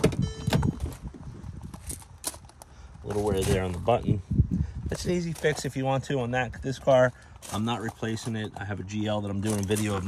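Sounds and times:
brief high tone: 0.2s - 0.8s.

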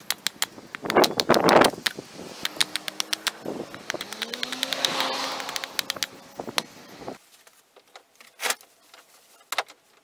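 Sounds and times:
hatchet chopping wood: 0.0s - 6.7s.

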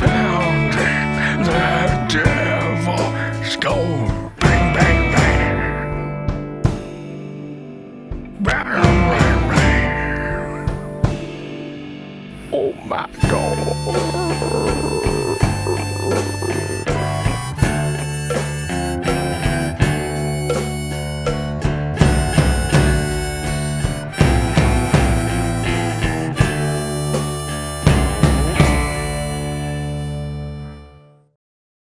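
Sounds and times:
electric guitar: 0.0s - 12.6s, 13.2s - 31.0s
drums: 0.0s - 30.6s
bass guitar: 0.0s - 31.2s
blues harmonica: 12.4s - 31.2s.

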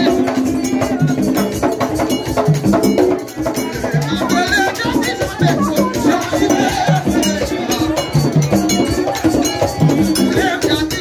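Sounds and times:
group singing: 0.0s - 11.0s
hand drums: 0.0s - 11.0s
struck metal bell: 7.0s - 10.6s.

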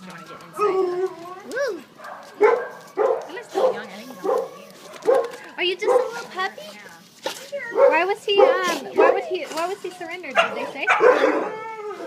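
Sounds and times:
dog barking: 2.0s - 6.2s, 7.7s - 9.3s, 10.3s - 11.5s.

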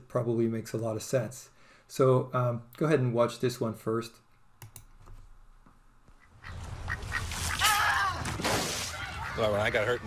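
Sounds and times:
outdoor background noise: 0.0s - 10.0s
duck quacking: 6.2s - 7.6s.

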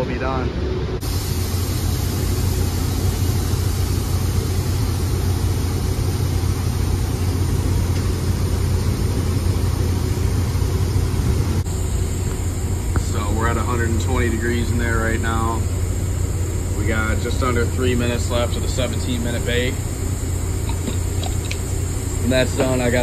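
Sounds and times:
air system fans humming: 0.0s - 23.0s.

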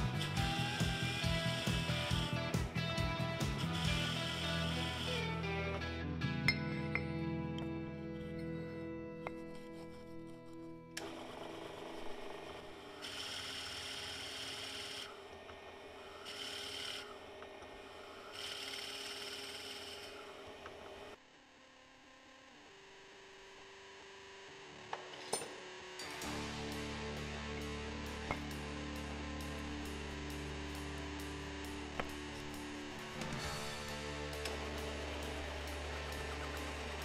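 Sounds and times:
drill press cutting wood: 0.0s - 5.8s, 9.2s - 21.2s, 24.1s - 37.0s
background music: 0.0s - 11.1s, 26.0s - 37.0s.

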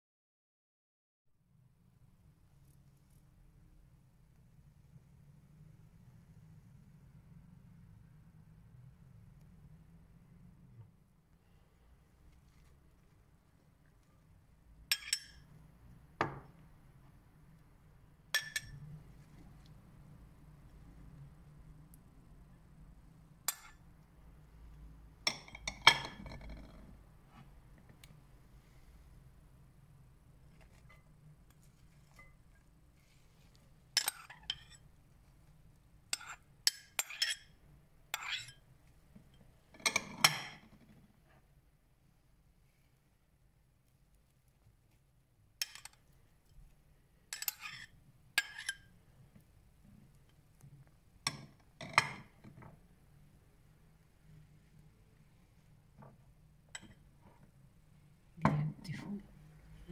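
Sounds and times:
ceramic bowls clinking: 14.9s - 15.5s, 18.3s - 19.0s, 25.2s - 26.9s, 34.0s - 34.9s, 47.3s - 48.9s.

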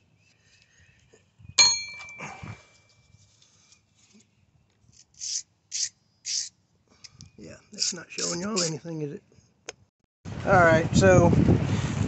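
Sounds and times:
sharp metallic ding: 1.6s - 2.5s
wire brush scrubbing metal file: 7.7s - 8.8s.

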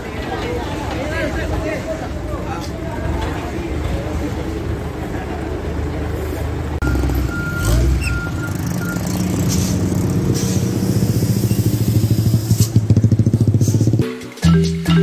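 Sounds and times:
fire truck engine running: 0.0s - 13.9s
short high beeps: 6.8s - 9.1s.

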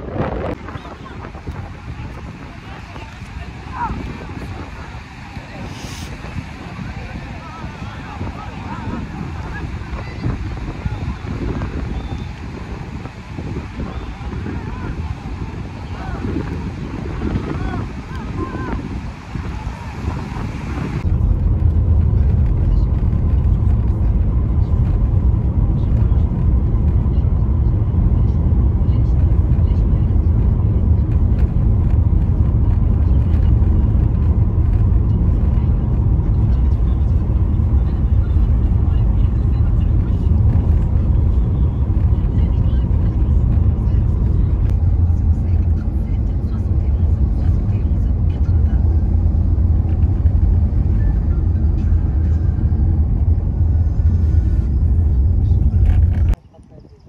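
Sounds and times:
wind and surf: 0.0s - 56.4s
car interior road and engine noise: 0.0s - 57.0s.

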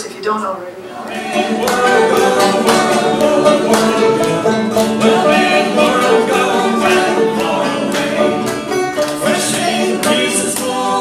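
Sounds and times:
people singing: 0.8s - 11.0s
banjo and acoustic guitar: 1.1s - 11.0s.

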